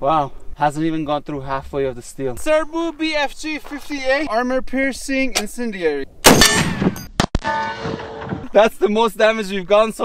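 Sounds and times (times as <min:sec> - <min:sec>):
rifle shot: 0:06.2 - 0:08.4
bullet clanging on steel plate: 0:06.3 - 0:08.3.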